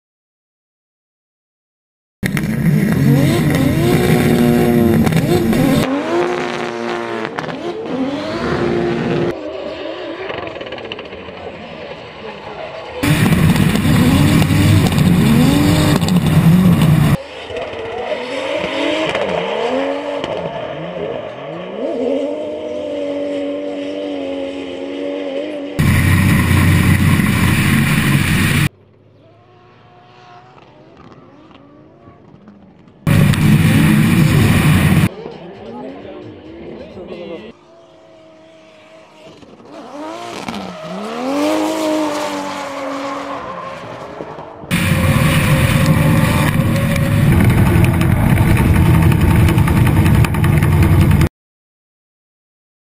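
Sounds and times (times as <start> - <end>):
car engines revving: 2.2 - 51.3.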